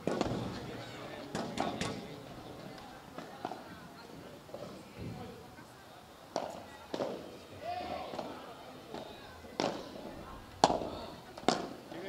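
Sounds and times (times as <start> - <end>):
ball bouncing on court: 0.0 - 0.6
racket hitting ball: 0.0 - 0.6, 6.4 - 7.3, 8.9 - 9.9, 10.6 - 11.8.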